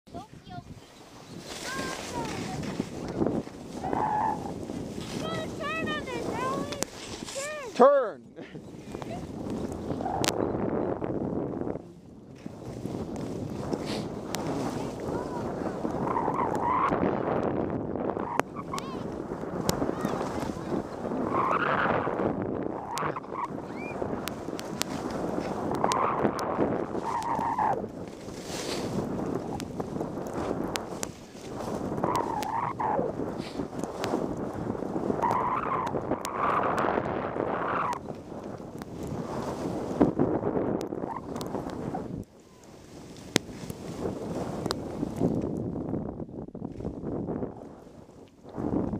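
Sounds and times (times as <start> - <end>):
wind noise on microphone: 0.0 - 48.9
skis scraping over packed snow: 0.1 - 7.8, 11.1 - 16.2, 17.0 - 45.6.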